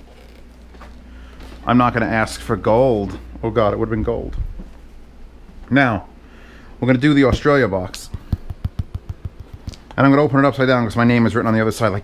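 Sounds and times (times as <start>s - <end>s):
fingers tapping on cardboard box: 8.1s - 9.9s.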